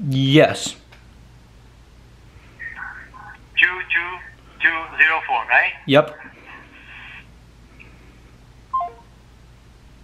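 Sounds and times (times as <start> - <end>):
faint low hum: 0.0 - 10.0
three-note descending phone beep: 8.8 - 9.1.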